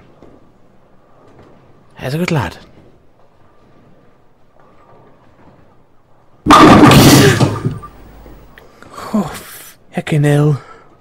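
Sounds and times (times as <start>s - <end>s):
bowling ball crashing into pins: 6.5s - 8.4s.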